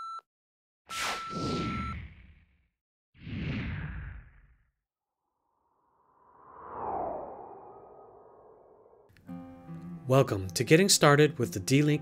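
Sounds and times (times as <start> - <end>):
whoosh: 5.4 - 9.1.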